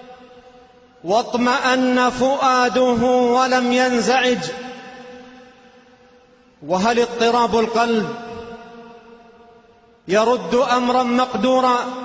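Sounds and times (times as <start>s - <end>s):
man preaching with echo: 0.0s - 12.0s.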